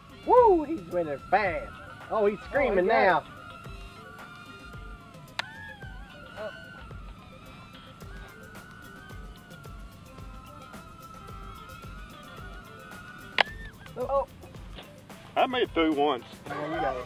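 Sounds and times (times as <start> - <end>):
quadcopter motors whining: 0.0 - 17.0.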